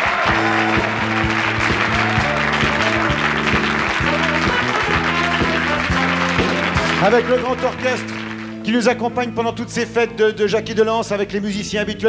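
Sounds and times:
audience applauding: 0.0s - 8.7s
orchestra playing rhythmic tune: 0.0s - 9.4s.

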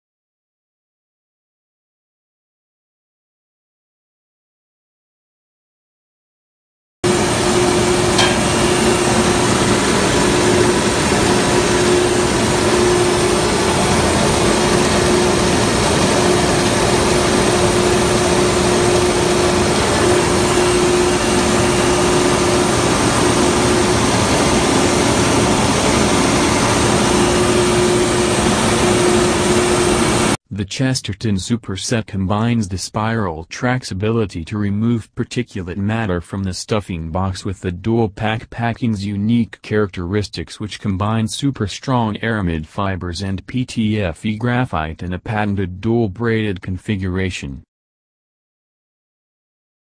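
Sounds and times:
slurry pump running: 7.0s - 30.4s.

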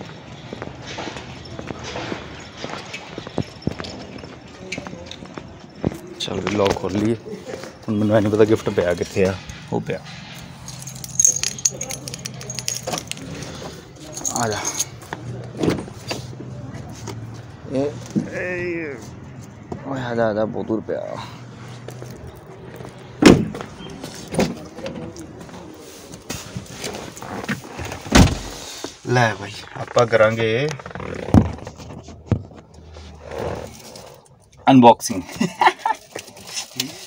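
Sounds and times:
metal keys jangling: 10.4s - 15.1s.

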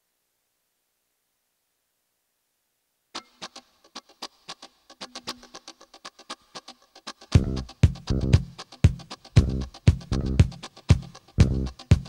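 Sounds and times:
muted electric guitar strums: 3.2s - 12.0s.

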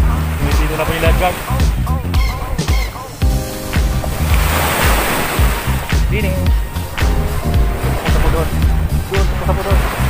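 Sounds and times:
background music with bass beat: 0.0s - 10.0s
waves washing onto sandy shore: 0.0s - 10.0s.

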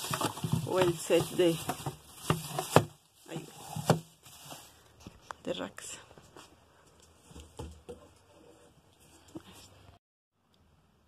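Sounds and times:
plastic wrap crinkling: 0.0s - 5.4s.

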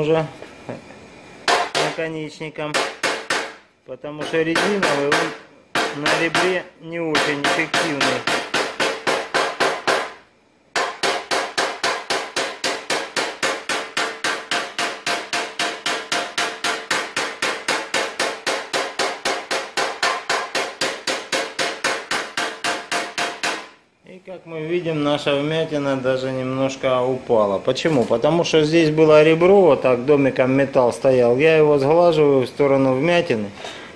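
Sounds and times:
hammer tapping metal punch: 1.5s - 2.0s, 4.2s - 10.2s, 10.8s - 23.8s.

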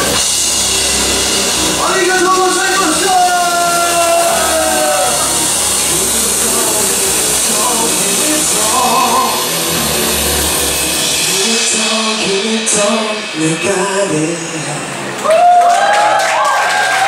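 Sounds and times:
live band with keyboards and guitar: 0.0s - 17.0s.

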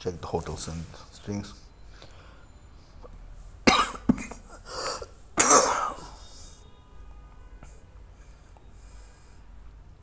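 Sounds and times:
person coughing: 3.7s - 6.3s.

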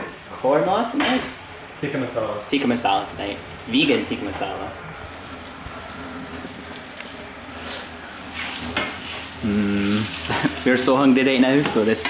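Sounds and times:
wooden spoon scraping a pan: 5.3s - 9.4s
potatoes sizzling in a pan: 6.2s - 12.0s.

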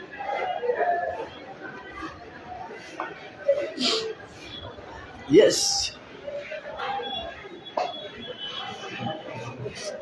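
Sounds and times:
indistinct voices chattering: 0.0s - 10.0s.

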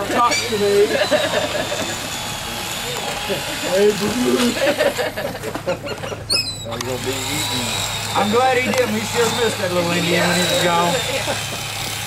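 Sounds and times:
people talking indistinctly: 0.0s - 11.5s
boat engine drone: 0.0s - 12.0s.

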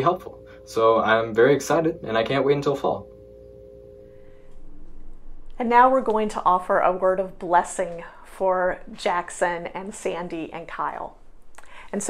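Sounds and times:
low hum: 0.0s - 11.6s
faint steady tones: 0.0s - 12.0s.

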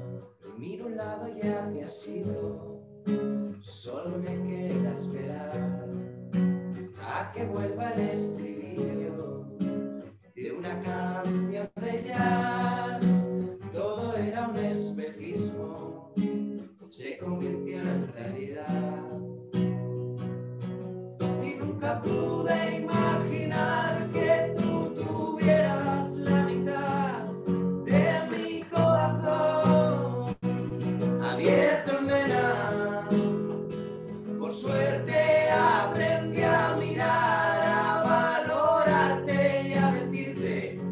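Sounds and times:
acoustic guitar strumming: 0.0s - 40.9s
men singing in harmony: 11.7s - 13.3s, 21.4s - 27.3s, 27.9s - 30.4s, 31.2s - 33.4s, 34.4s - 40.9s.

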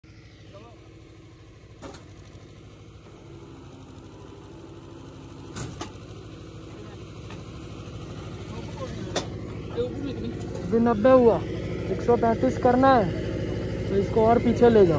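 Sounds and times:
machine motor humming: 0.0s - 14.9s.

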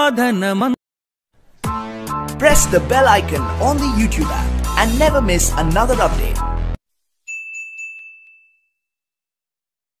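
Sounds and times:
notification bell ding: 7.3s - 8.8s.

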